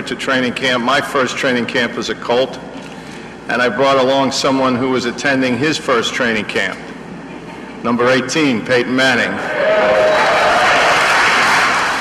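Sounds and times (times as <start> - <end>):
audience applauding: 9.7 - 12.0.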